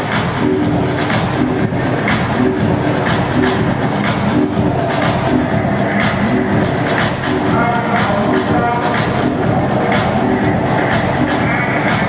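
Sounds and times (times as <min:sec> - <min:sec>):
electronic dance music: 0:00.0 - 0:12.0
low synth riff: 0:00.0 - 0:12.0
steady kick drum: 0:00.0 - 0:12.0.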